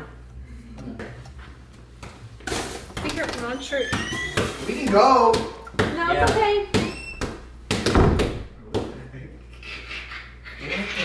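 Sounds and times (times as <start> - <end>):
boxing gloves hitting mitts: 4.4 - 9.0.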